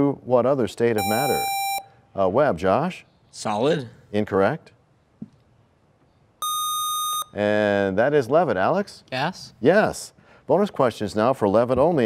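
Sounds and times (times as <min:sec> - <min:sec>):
high electronic buzzer beep: 0:01.0 - 0:01.9, 0:06.4 - 0:07.4.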